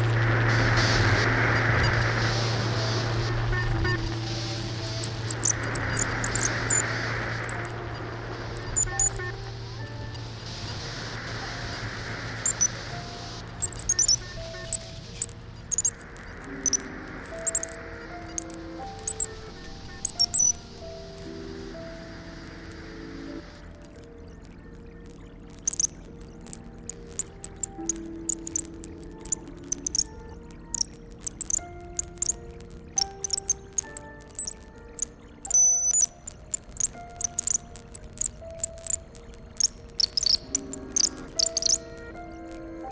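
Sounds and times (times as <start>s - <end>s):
sharp crackling clicks: 0.0s - 10.8s, 11.6s - 21.7s, 22.4s - 42.9s
hiss: 0.0s - 42.9s
low steady hum: 0.0s - 42.9s.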